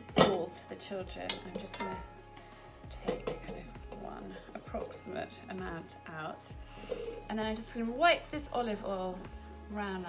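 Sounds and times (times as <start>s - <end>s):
background music: 0.0s - 10.0s
hands knocking metal bowl: 1.2s - 2.2s, 3.0s - 5.0s.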